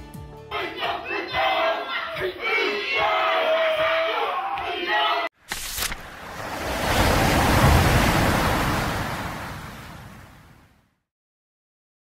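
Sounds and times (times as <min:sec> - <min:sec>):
men chanting and shouting: 0:00.5 - 0:05.3.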